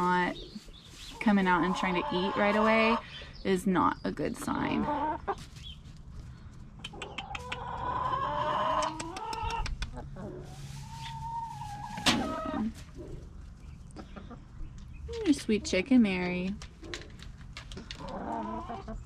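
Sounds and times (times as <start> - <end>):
hens clucking: 0.0 - 6.1, 6.7 - 19.0.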